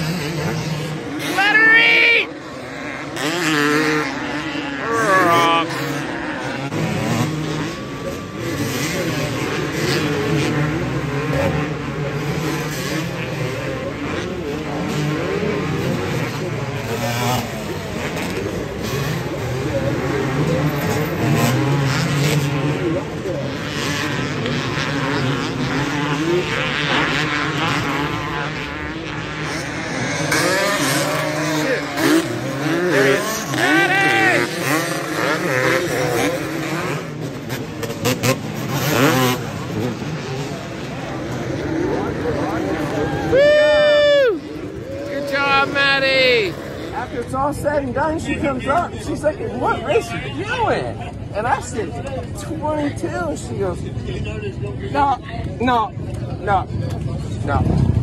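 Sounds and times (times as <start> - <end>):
dirt bike engines revving: 0.0 - 58.0.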